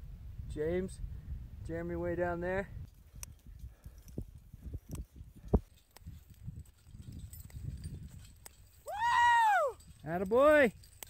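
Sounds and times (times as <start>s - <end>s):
person whooping: 8.8s - 9.8s.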